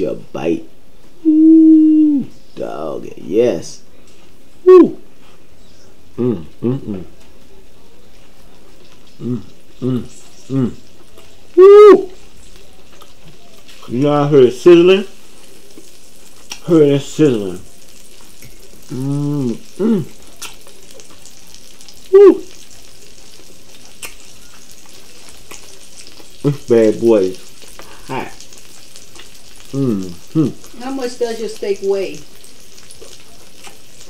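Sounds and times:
man exclaiming woo: 1.2s - 2.3s, 4.7s - 5.0s, 11.6s - 12.1s, 22.1s - 22.5s
steak sizzling on grill: 7.2s - 34.0s.

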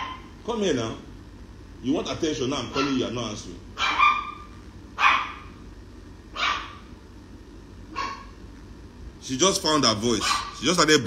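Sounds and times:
puppy barking: 0.0s - 0.3s, 2.7s - 3.2s, 3.8s - 5.6s, 6.3s - 6.9s, 7.9s - 8.4s, 10.1s - 10.6s.

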